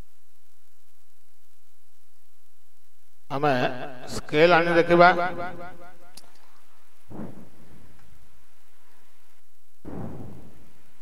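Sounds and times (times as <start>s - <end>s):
steady background hiss: 0.0s - 11.0s
soft thump: 7.1s - 7.8s, 9.9s - 10.8s.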